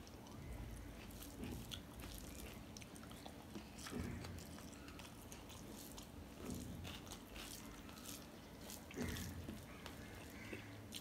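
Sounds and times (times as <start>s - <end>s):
soft chewing: 0.0s - 11.0s.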